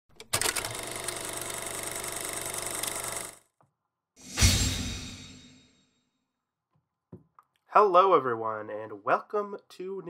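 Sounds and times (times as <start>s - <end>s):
film projector clatter: 0.2s - 3.4s.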